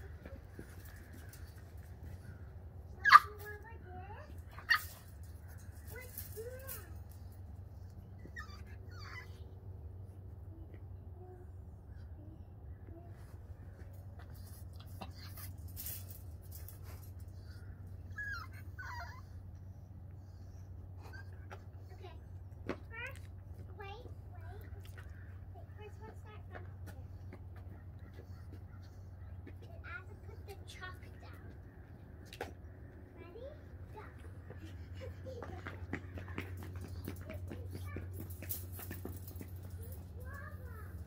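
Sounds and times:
puppy whining: 2.9s - 10.8s, 17.2s - 22.0s
puppy barking: 3.0s - 3.4s.

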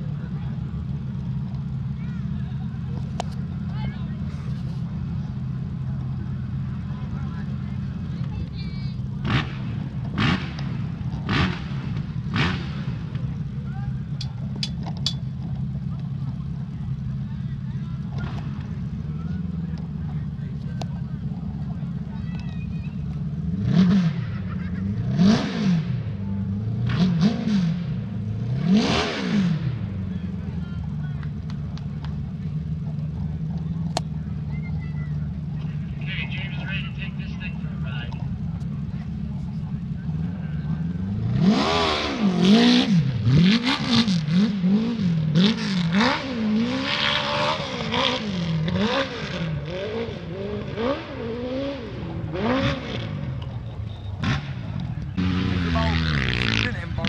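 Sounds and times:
dirt bike engine revving: 9.0s - 14.8s, 23.3s - 30.1s, 39.9s - 57.0s.

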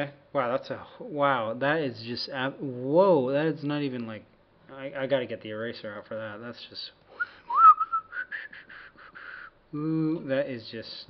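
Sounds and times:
person whistling: 7.1s - 9.6s.

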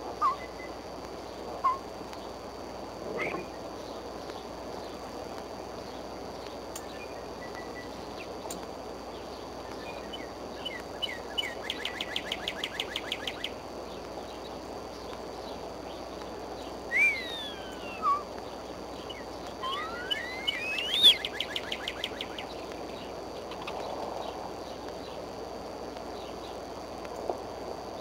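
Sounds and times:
eagle chattering calls: 0.2s - 0.7s, 1.6s - 1.9s, 16.9s - 18.3s, 19.1s - 22.5s
eagle sliding whistles: 16.9s - 18.3s, 19.6s - 21.8s.

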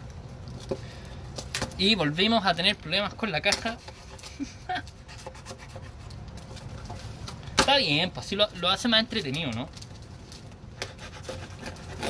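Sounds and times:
hands scraping cardboard box: 3.4s - 7.2s, 10.8s - 12.0s.

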